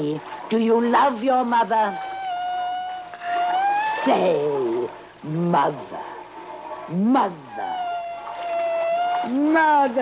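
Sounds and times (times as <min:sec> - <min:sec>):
dolphin whistle call: 0:01.8 - 0:04.1.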